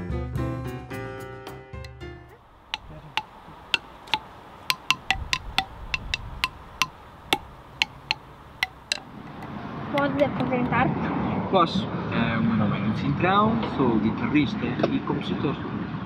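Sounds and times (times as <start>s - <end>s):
wooden xylophone knocks: 2.7s - 10.5s.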